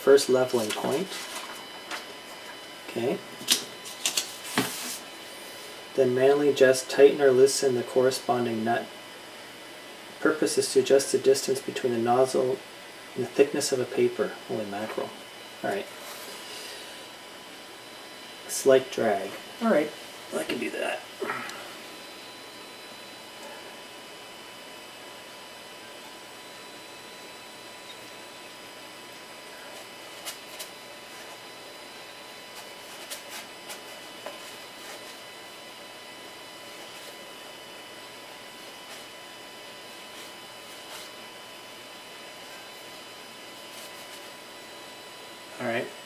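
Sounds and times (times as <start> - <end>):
electrical hum with high whine: 0.0 - 46.0.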